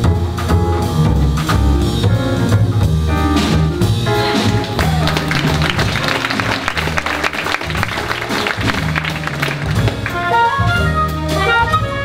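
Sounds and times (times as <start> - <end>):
jazz bass and drums playing: 0.0 - 12.0
audience applauding: 4.4 - 10.6.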